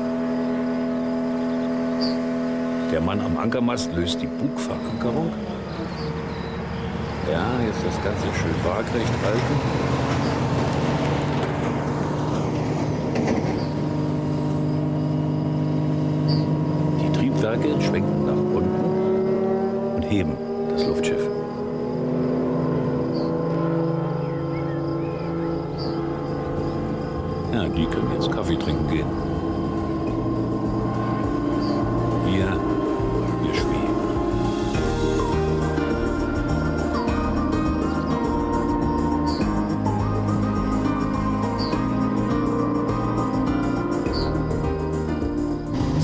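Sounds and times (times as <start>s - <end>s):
blimp engines droning: 0.0s - 46.0s
steady high tone: 26.8s - 45.0s.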